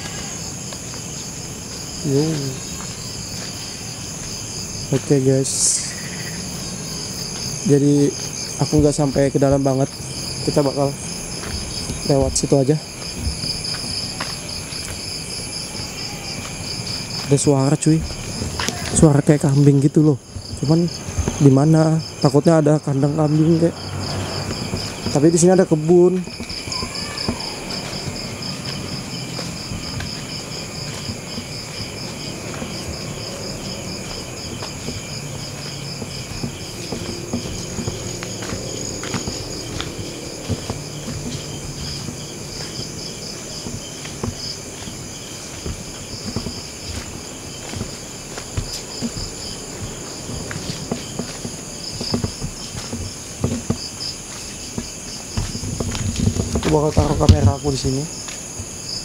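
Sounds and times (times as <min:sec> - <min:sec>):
footsteps on dirt path: 0:00.0 - 0:59.0
insects trilling: 0:00.0 - 0:59.0.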